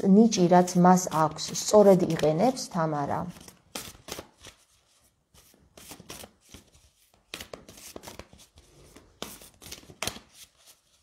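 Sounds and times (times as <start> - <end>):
cards being shuffled: 3.2 - 11.0.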